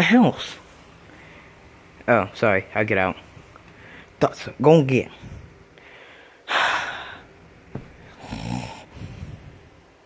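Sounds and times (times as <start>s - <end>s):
person fake snoring: 8.0s - 9.6s.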